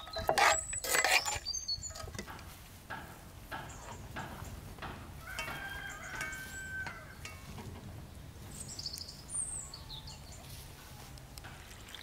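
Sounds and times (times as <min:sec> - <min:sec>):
small birds chirping: 0:00.0 - 0:02.5, 0:03.5 - 0:12.0
rooster crowing: 0:05.2 - 0:07.5.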